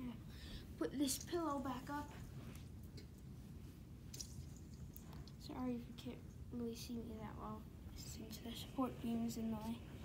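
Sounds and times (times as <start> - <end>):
low room rumble: 0.0 - 10.0
soft rustle of bedding: 0.7 - 10.0.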